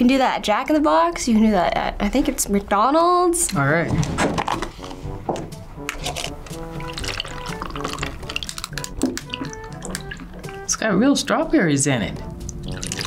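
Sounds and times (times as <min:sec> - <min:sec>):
light plucked background music: 0:00.0 - 0:13.0
drink pouring into cups of ice: 0:05.8 - 0:10.6, 0:12.4 - 0:13.0
ice clicking: 0:05.8 - 0:10.6.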